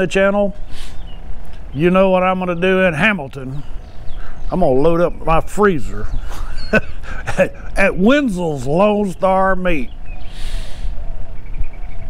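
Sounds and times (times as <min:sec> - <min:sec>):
wind buffeting microphone: 0:00.0 - 0:12.0
short breath: 0:00.7 - 0:01.1, 0:10.2 - 0:11.1.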